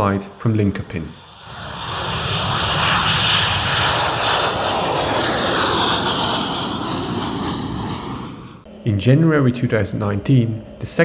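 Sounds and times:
jet engines roaring at takeoff: 0:00.0 - 0:11.0.

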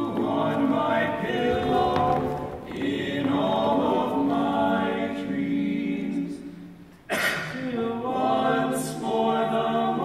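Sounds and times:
chorus singing held notes: 0:00.0 - 0:06.8, 0:07.4 - 0:10.0.

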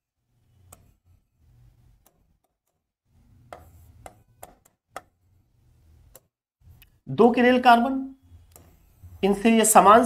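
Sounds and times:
pen tapping on screen: 0:03.5 - 0:05.2.

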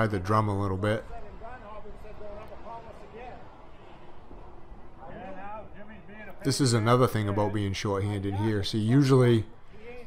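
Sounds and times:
distant man talking: 0:05.0 - 0:10.0.

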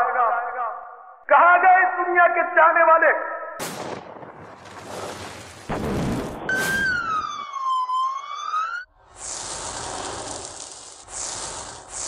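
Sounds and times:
ambulance siren wail: 0:06.5 - 0:08.9
steady high hiss: 0:09.1 - 0:12.0.

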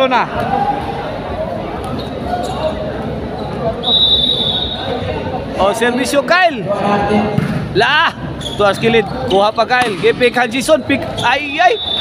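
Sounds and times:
gym crowd voices: 0:00.0 - 0:12.0
referee's whistle: 0:03.8 - 0:05.0, 0:11.2 - 0:12.0.

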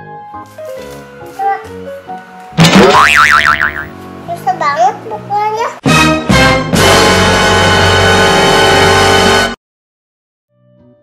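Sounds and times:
light background music: 0:00.0 - 0:07.3
child's high-pitched voice: 0:01.3 - 0:01.7, 0:04.3 - 0:05.8
cartoon boing: 0:02.6 - 0:03.9.

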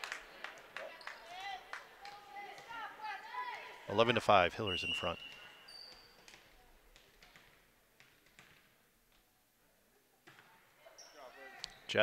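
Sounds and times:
ball bouncing on wooden floor: 0:05.9 - 0:08.7.

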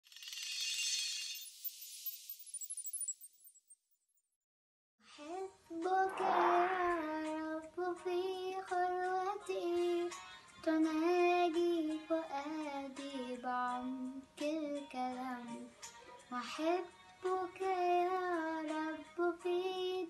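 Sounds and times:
girl singing a hymn: 0:05.2 - 0:15.7, 0:16.3 - 0:20.0.

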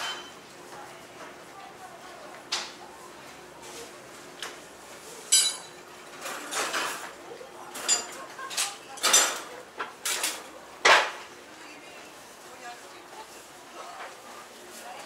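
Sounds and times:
metallic ring: 0:05.3 - 0:05.7.

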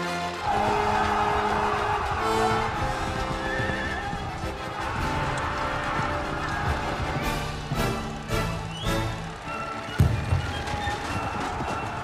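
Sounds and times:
film score music: 0:00.0 - 0:12.0
running feet: 0:00.3 - 0:12.0
horse hooves: 0:00.4 - 0:12.0.

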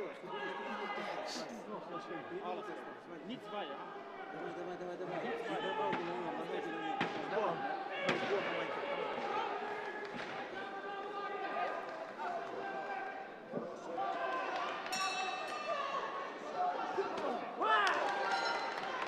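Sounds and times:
crowd chattering and calling out: 0:00.0 - 0:19.0.

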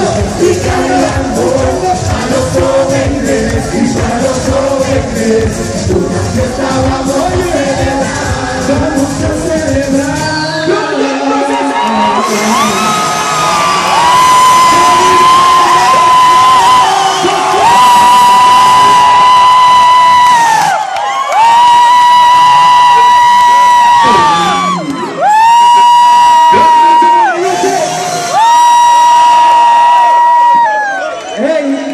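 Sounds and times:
crowd cheering and whooping: 0:11.0 - 0:31.9.

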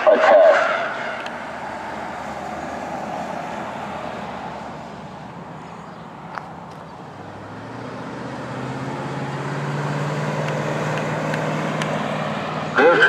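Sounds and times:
siren loudspeaker recorded voice: 0:00.0 - 0:01.3, 0:12.7 - 0:13.0
vehicle engine hum: 0:00.0 - 0:13.0.

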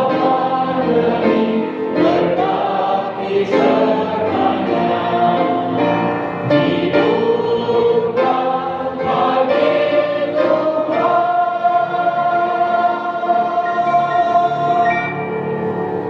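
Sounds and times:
group singing gospel song: 0:00.0 - 0:15.3
grand piano: 0:00.0 - 0:16.0.

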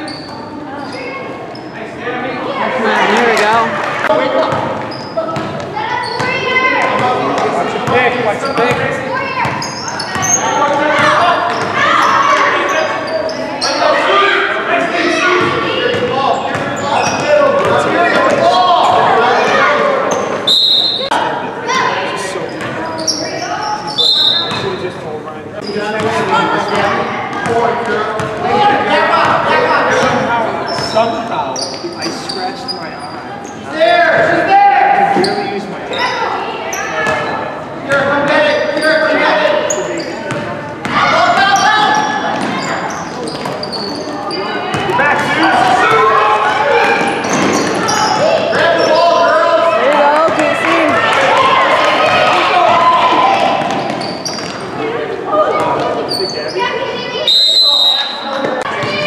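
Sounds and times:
shoe squeaks: 0:00.0 - 0:01.8, 0:04.8 - 0:06.4, 0:08.4 - 0:13.9, 0:16.3 - 0:17.3, 0:20.1 - 0:21.2, 0:22.4 - 0:24.8, 0:25.6 - 0:26.9, 0:29.9 - 0:33.7, 0:38.5 - 0:40.4, 0:41.4 - 0:44.9, 0:46.9 - 0:49.2, 0:53.7 - 0:54.7, 0:56.0 - 0:59.0
voices and shouts in gym: 0:00.0 - 0:59.0.

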